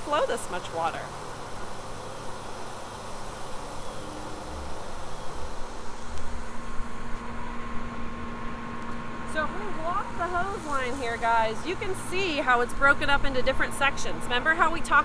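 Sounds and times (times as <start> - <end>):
pump engine humming: 0.0 - 15.0.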